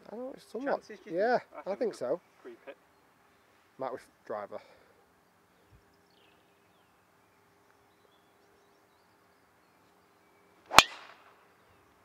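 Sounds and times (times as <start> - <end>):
golf club striking ball: 10.7 - 11.3.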